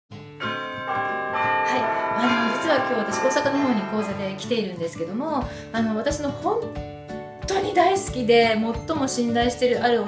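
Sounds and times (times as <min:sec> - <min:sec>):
bell-like chiming music: 0:00.4 - 0:06.0.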